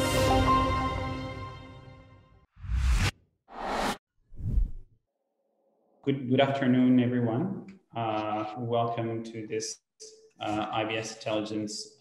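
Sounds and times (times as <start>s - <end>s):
whoosh sound effects: 2.6s - 4.8s.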